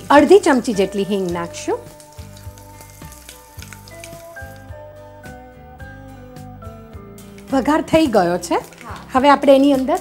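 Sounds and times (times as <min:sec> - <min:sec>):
background music with melody: 0:00.0 - 0:10.0
spices sizzling in hot oil: 0:00.0 - 0:10.0.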